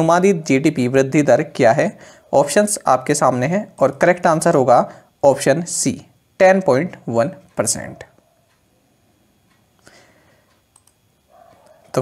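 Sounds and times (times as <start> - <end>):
faint computer mouse clicks: 10.5 - 11.8.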